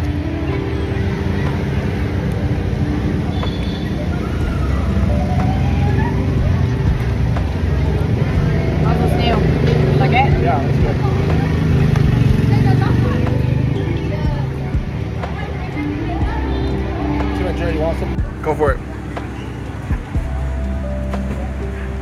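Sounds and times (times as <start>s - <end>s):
people talking: 0.0s - 22.0s
street traffic rumble: 0.0s - 22.0s.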